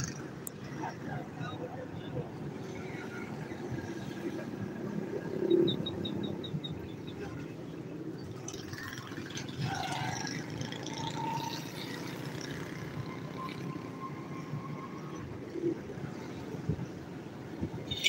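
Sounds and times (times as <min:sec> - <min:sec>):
street traffic rumble: 0:00.0 - 0:18.0.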